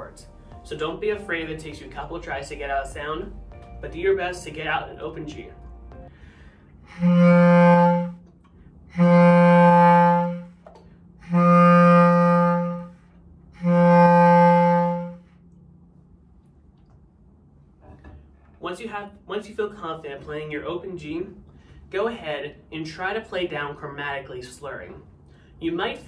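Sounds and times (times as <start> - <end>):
bass clarinet held notes: 6.8 - 15.6.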